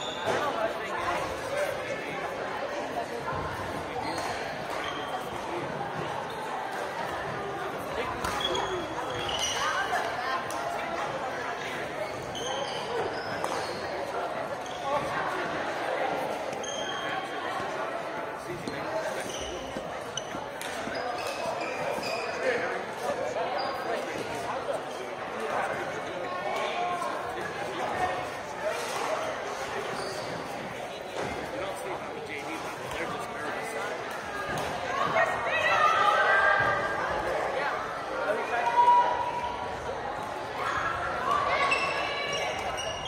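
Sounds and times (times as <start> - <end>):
sneaker squeaks: 0.0 - 1.7, 3.3 - 7.4, 8.0 - 10.1, 11.6 - 15.4, 16.5 - 17.8, 18.4 - 24.5, 27.8 - 31.5, 41.3 - 43.0
players' voices: 0.0 - 43.0.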